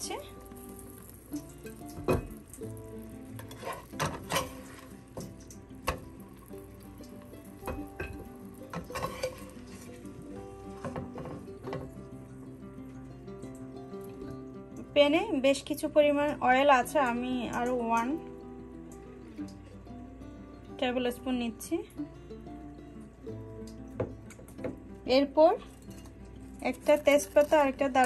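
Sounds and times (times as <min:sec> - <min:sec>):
oil sizzling faintly: 0:00.0 - 0:28.0
soft background music: 0:00.0 - 0:28.0
spatula scraping frying pan: 0:03.4 - 0:05.1, 0:08.7 - 0:11.8.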